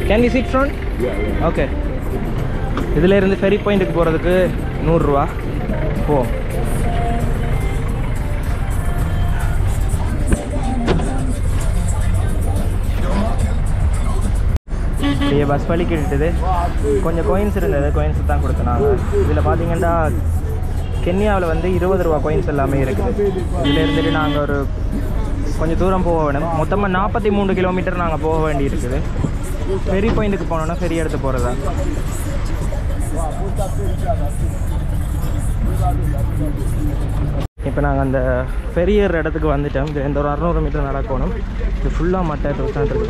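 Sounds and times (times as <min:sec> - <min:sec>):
indistinct voices: 0:00.0 - 0:37.5
background music: 0:00.0 - 0:38.8
minibus engine rumble: 0:00.0 - 0:43.0
road noise: 0:00.0 - 0:43.0.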